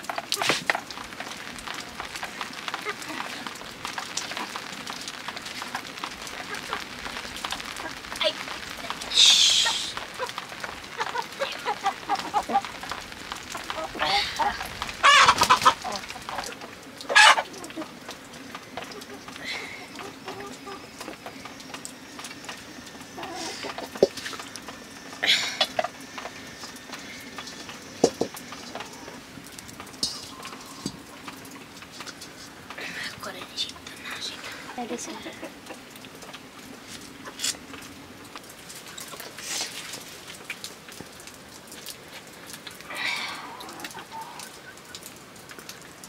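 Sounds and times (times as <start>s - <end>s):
chickens clucking: 8.8s - 24.5s, 25.5s - 29.2s, 34.6s - 36.5s
chicken loud calls: 13.6s - 17.8s.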